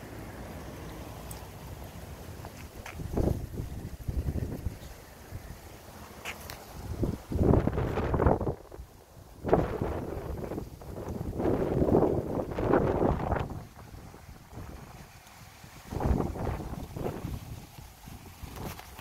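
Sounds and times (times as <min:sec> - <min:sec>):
wind buffeting microphone: 0:02.6 - 0:05.6, 0:06.5 - 0:19.0.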